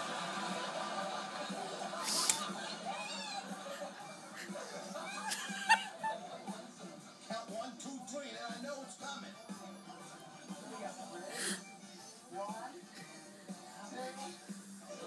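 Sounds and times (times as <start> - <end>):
laughter: 0.0 - 6.8
television music: 0.0 - 15.0
voices on television: 0.0 - 15.0.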